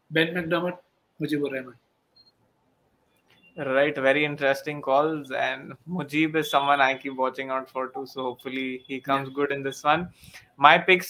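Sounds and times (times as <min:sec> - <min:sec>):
man speaking: 0:00.1 - 0:01.8, 0:03.6 - 0:11.0.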